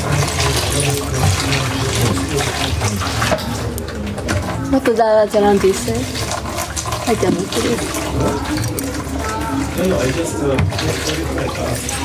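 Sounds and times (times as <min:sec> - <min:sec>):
low indistinct voices: 0:00.0 - 0:12.0.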